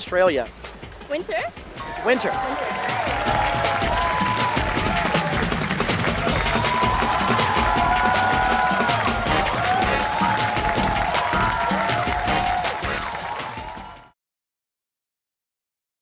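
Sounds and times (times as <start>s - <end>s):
theme music with drum beat: 0.0s - 14.2s.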